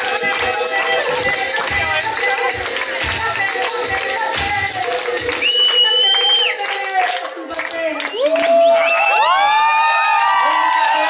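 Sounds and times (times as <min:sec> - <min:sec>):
crowd cheering and whooping: 0:08.1 - 0:11.0.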